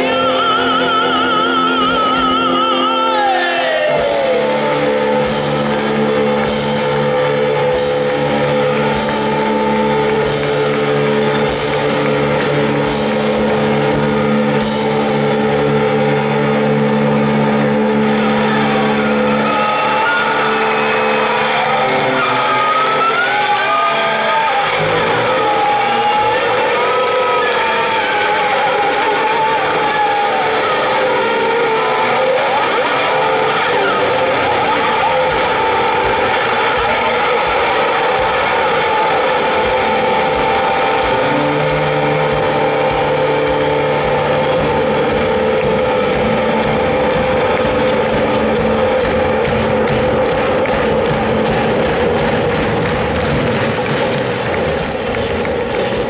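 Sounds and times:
distorted electric guitars: 0.0s - 56.0s
lead guitar bending notes: 0.0s - 56.0s.

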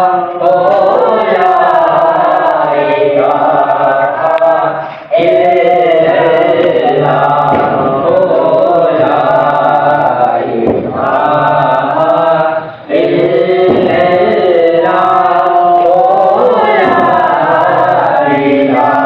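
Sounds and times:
man and boys chanting: 0.0s - 19.0s.

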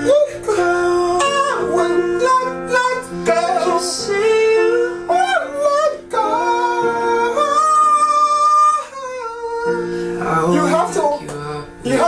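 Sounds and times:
man singing pop ballad: 0.0s - 12.0s
soft guitar: 0.0s - 12.0s.

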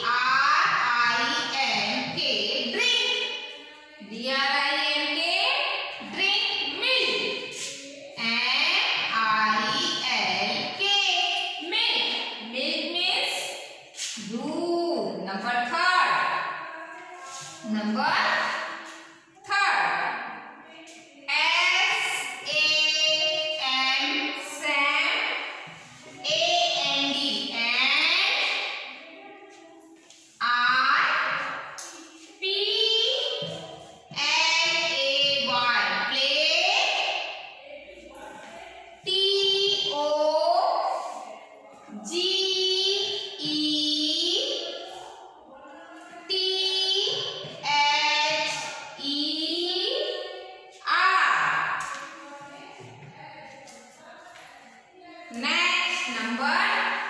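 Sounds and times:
high voice sing-song chanting: 0.0s - 57.0s.

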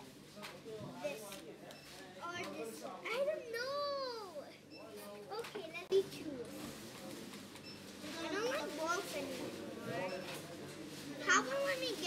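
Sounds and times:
child speaking indistinctly: 2.3s - 4.6s, 11.2s - 12.0s.

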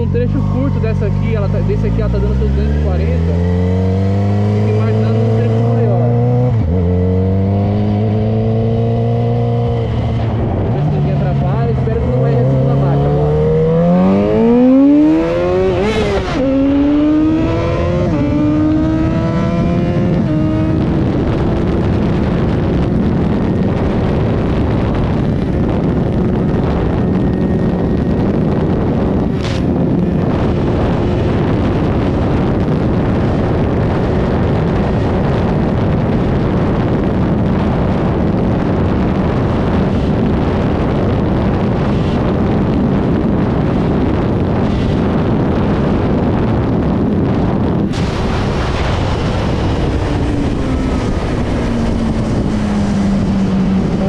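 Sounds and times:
motorcycle engine accelerating: 0.0s - 54.0s
wind rush on microphone: 0.0s - 54.0s.

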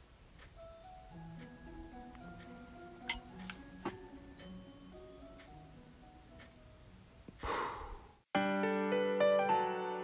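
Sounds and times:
soft background music: 0.4s - 7.5s.

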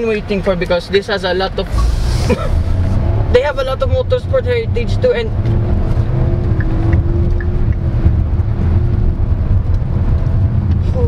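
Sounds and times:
car engine rumble: 0.0s - 11.0s
road and wind noise: 0.0s - 11.0s.

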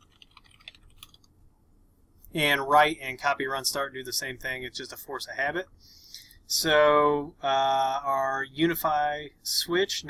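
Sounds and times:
computer keyboard typing: 0.0s - 1.3s.

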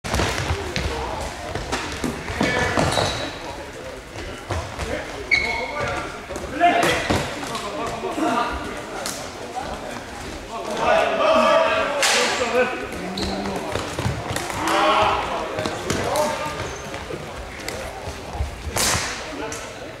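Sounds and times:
sneakers squeaking on court: 2.2s - 3.5s, 4.7s - 6.2s, 13.1s - 14.4s, 15.6s - 17.2s.

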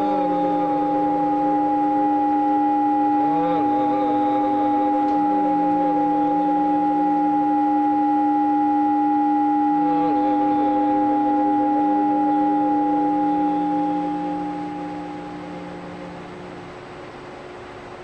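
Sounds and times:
electronic drone music: 0.0s - 17.1s.

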